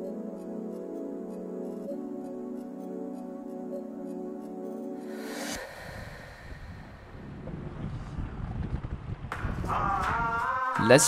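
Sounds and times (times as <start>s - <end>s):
music track: 0.0s - 7.9s
soft background music: 0.0s - 8.2s
wind buffeting microphone: 5.9s - 10.4s.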